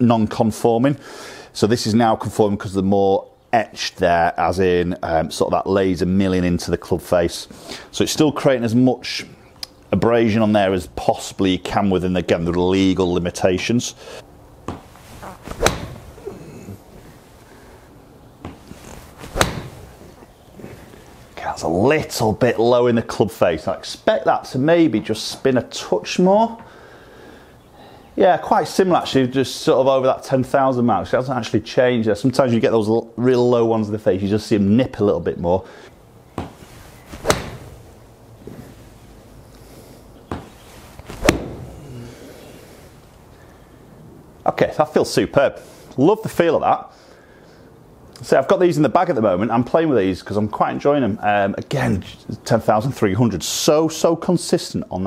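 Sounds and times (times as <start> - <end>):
golf club striking ball: 14.7 - 16.3, 18.4 - 20.0, 36.3 - 37.9, 40.3 - 40.6, 41.2 - 41.8
sharp knock: 15.6 - 16.0, 19.4 - 19.8, 37.2 - 37.7, 41.2 - 41.7.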